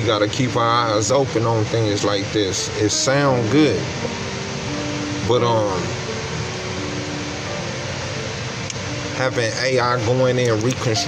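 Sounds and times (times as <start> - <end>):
soft music with low held notes: 0.0 - 11.0
steady rushing noise: 0.0 - 11.0.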